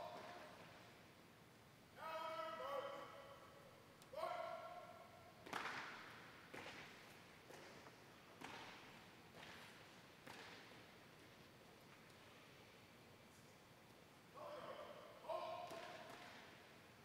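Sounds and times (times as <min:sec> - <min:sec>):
person shouting command: 0:02.0 - 0:03.5, 0:04.1 - 0:05.1, 0:14.4 - 0:16.1.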